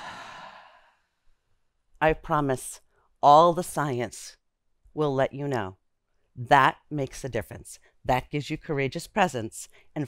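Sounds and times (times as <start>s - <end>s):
long breathy exhale: 0.0s - 1.1s.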